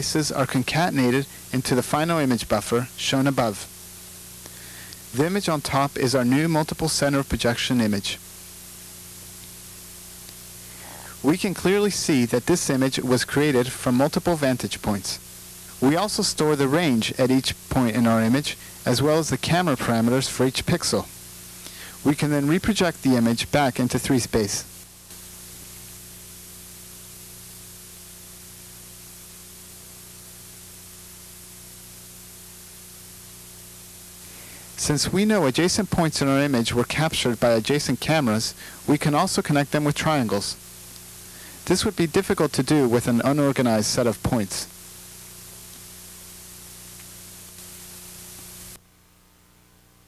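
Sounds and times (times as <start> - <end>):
low even hum: 0.0 - 50.0
tape hiss: 0.0 - 50.0.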